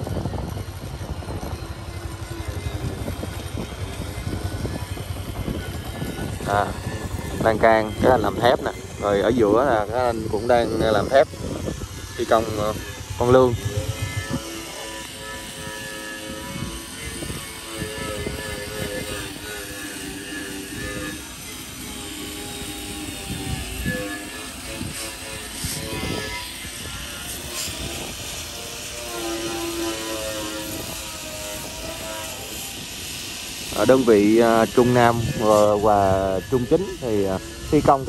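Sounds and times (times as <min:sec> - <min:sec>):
faint hums: 0:00.0 - 0:38.0
wind rumbling on microphone: 0:00.0 - 0:38.0.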